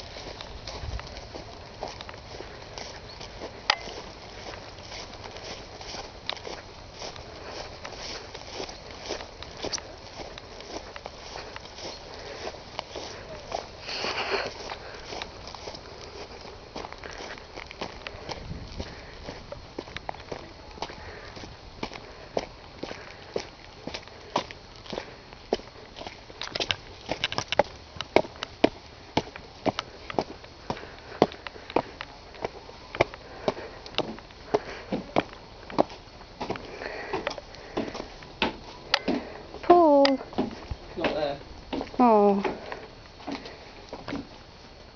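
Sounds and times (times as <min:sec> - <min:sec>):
footsteps on stone steps: 0:00.0 - 0:44.3
footsteps on field path: 0:00.0 - 0:44.9
person sniffing: 0:13.8 - 0:15.1.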